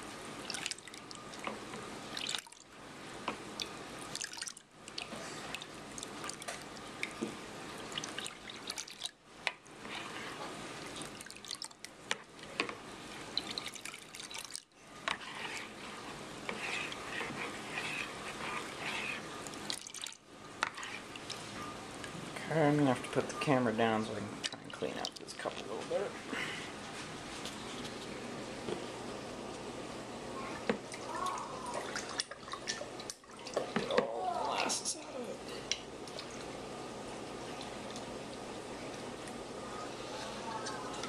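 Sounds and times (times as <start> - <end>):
liquid sloshing and dripping: 0.4 - 1.5, 2.1 - 2.7, 3.6 - 10.2, 10.8 - 15.9, 16.5 - 21.5, 30.6 - 34.1, 35.7 - 36.6.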